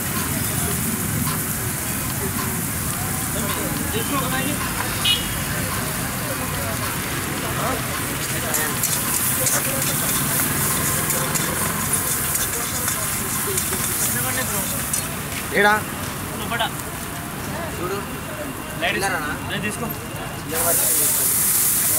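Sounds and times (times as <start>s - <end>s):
gas burner flame rushing: 0.0s - 15.3s, 20.5s - 21.9s
food sizzling in a wok: 0.0s - 15.9s, 20.5s - 21.9s
crackling: 0.0s - 17.4s
ladle stirring in a wok: 6.7s - 15.1s.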